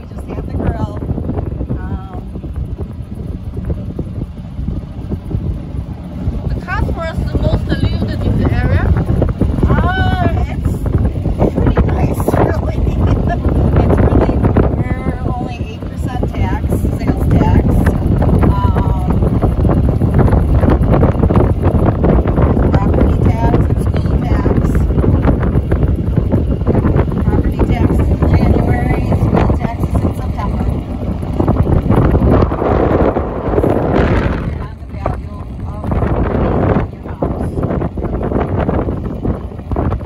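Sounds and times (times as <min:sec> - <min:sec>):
people talking: 0:00.0 - 0:01.1, 0:01.7 - 0:02.4, 0:06.4 - 0:09.0, 0:09.6 - 0:19.3, 0:22.5 - 0:24.9, 0:27.1 - 0:30.9, 0:33.6 - 0:37.9
golf cart rumble on grass: 0:00.0 - 0:40.0
wind buffeting microphone: 0:00.0 - 0:40.0.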